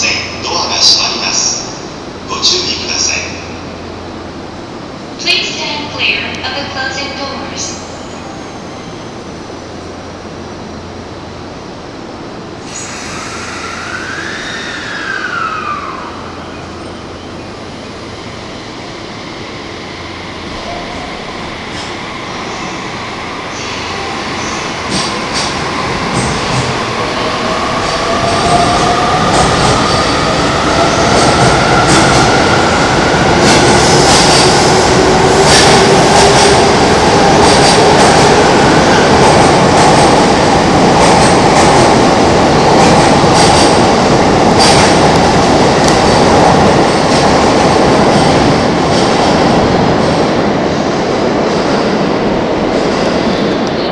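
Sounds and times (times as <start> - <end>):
train rolling rumble: 0.0 - 53.9.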